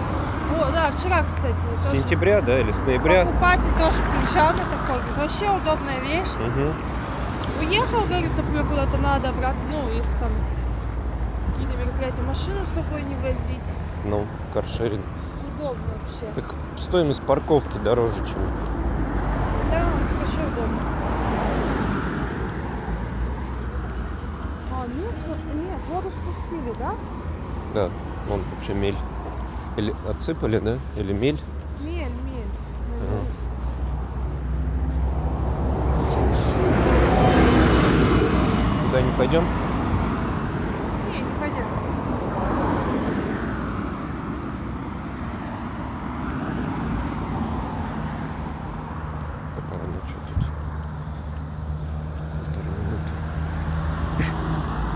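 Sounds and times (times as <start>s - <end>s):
car passing: 0.0s - 54.9s
low traffic rumble: 0.0s - 54.9s.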